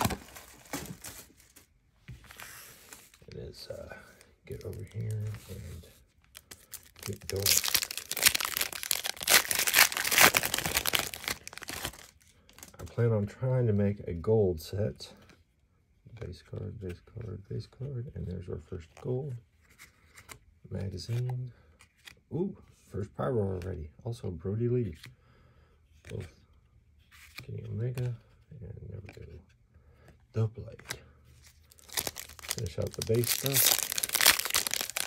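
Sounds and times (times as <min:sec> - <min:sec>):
foil wrapper tearing and crinkling: 0:06.4 - 0:12.1, 0:31.7 - 0:35.0.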